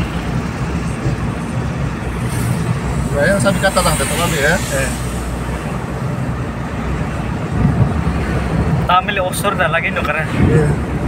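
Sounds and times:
vehicle engine rumble: 0.0s - 11.0s
tyre hiss: 2.2s - 6.1s.

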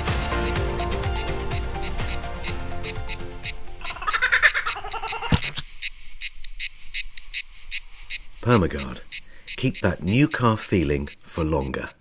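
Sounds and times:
background music: 0.0s - 4.2s
insects chirping: 0.0s - 12.0s
kookaburra laughing call: 3.8s - 5.6s.

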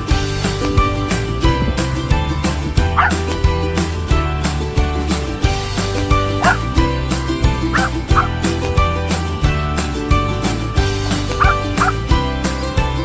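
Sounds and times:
background music with beat: 0.0s - 13.0s
high dog yips: 3.0s - 3.2s, 6.4s - 6.6s, 7.8s - 8.4s, 11.4s - 12.0s.

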